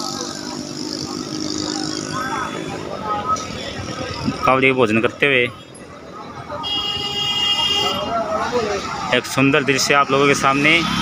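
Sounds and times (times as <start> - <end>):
faint voices: 0.0 - 11.0
vehicle engine humming: 0.0 - 11.0.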